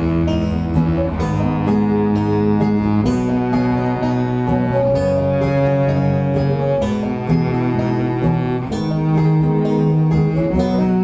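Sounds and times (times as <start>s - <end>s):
acoustic folk band playing: 0.0s - 11.0s
banjo picking: 0.0s - 11.0s.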